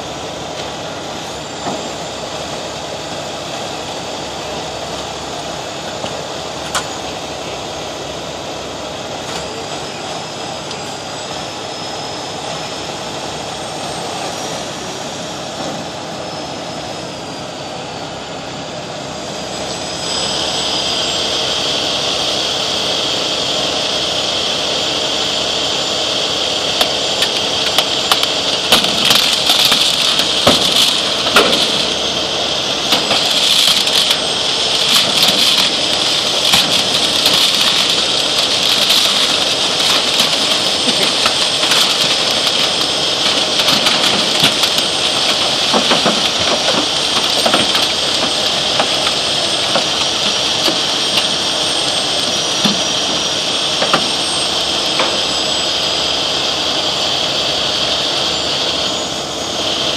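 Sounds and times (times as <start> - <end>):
steady high whine: 0.0 - 59.9
truck engine and hydraulics running: 0.0 - 59.9.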